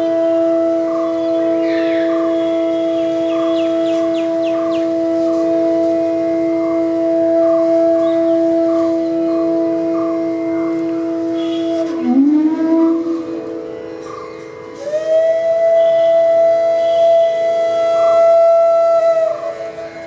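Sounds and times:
bamboo flutes sustaining a note: 0.0 - 20.0.

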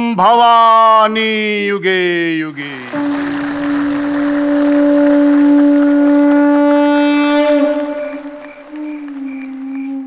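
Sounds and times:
conch shell blown: 2.8 - 10.0.

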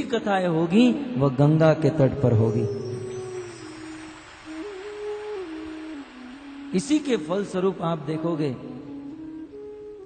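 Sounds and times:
soft background music: 0.0 - 10.0.

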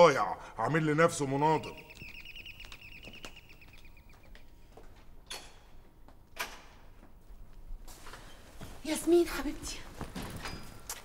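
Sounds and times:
footsteps clicking: 1.8 - 5.2.

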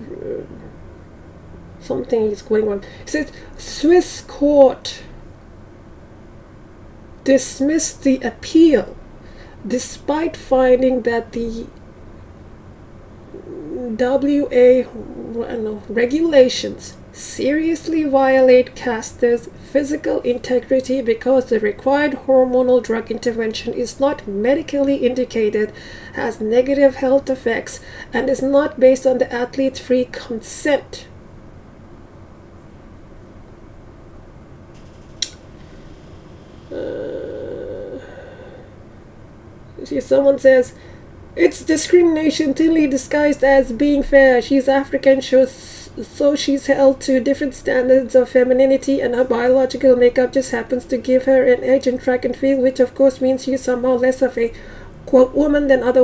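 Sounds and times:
person saying uhh: 0.0 - 0.7, 13.3 - 14.0, 36.7 - 38.7
woman speaking slowly: 0.0 - 0.7, 1.8 - 5.2, 9.6 - 11.8, 13.3 - 31.1, 36.7 - 38.7.

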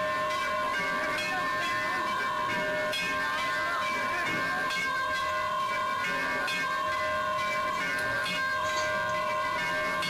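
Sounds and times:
temple bells ringing: 0.0 - 10.0.

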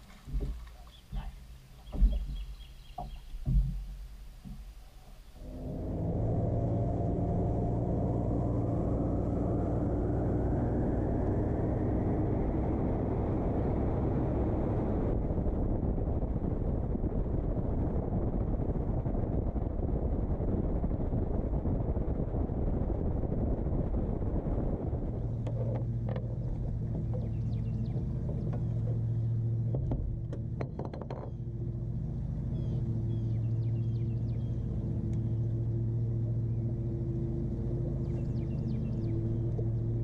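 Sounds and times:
wind and water rushing: 0.0 - 30.6
outboard motor whine: 0.0 - 40.0.

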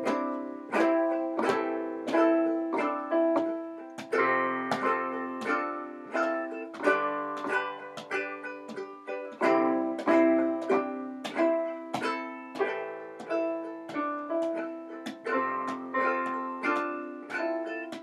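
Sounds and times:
keyboard playing: 0.0 - 18.0
ukulele strumming chords: 0.0 - 18.0.

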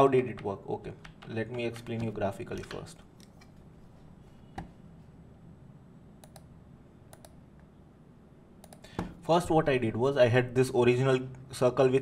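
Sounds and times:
mouse and keyboard clicks: 1.0 - 3.6.

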